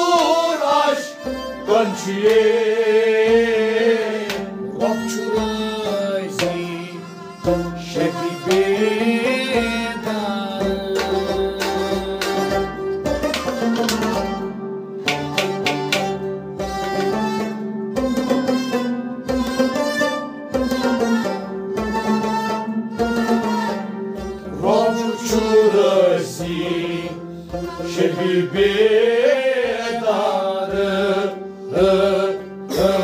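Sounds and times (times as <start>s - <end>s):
bowed string melody: 0.0s - 33.0s
harmonium steady notes: 0.0s - 33.0s
hand drum beat: 2.2s - 17.4s, 19.2s - 21.2s.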